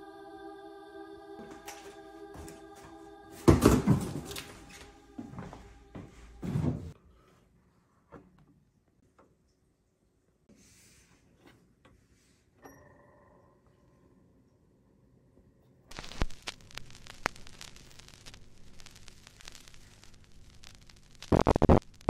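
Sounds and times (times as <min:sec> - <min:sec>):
vinyl record crackle and pops: 0:03.5 - 0:05.6, 0:15.9 - 0:22.0.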